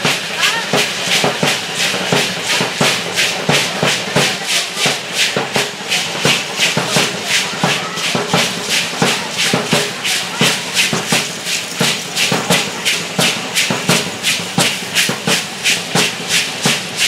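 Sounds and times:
hand rattles shaken in rhythm: 0:00.0 - 0:17.0.

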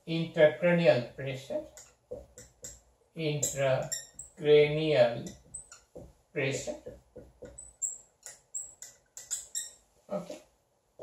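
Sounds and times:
marker writing on whiteboard: 0:01.5 - 0:10.5
marker squeaks: 0:03.4 - 0:04.5, 0:05.1 - 0:10.0.

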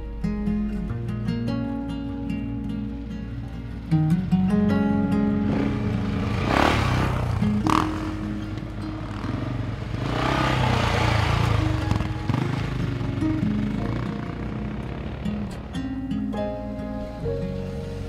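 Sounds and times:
acoustic guitar music: 0:00.0 - 0:18.0
motorcycles passing by: 0:02.4 - 0:18.0.

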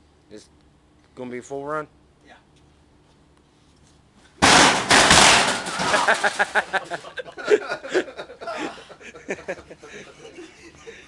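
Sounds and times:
loud crash: 0:04.4 - 0:06.7
rapid clattering impacts: 0:04.4 - 0:07.0.

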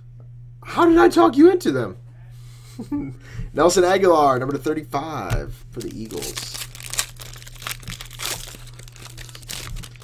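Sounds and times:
steady low hum: 0:00.0 - 0:10.0
foil wrappers crinkling: 0:05.6 - 0:10.0.

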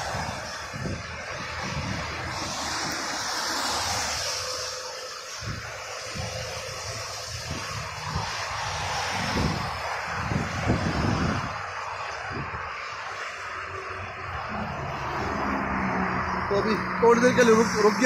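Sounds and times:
loud vehicle passing: 0:00.0 - 0:18.0
tyre hiss of passing traffic: 0:00.0 - 0:18.0
wind buffeting microphone: 0:00.0 - 0:18.0.

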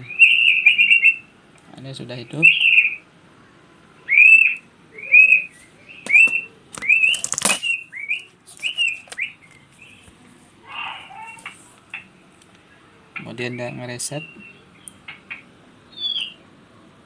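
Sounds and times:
small bird chirping: 0:00.0 - 0:01.3, 0:02.3 - 0:03.0, 0:04.1 - 0:10.1, 0:13.2 - 0:16.4.

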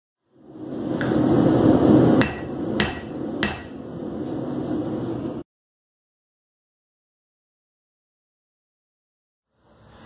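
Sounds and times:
steady rushing noise: 0:00.3 - 0:05.4.

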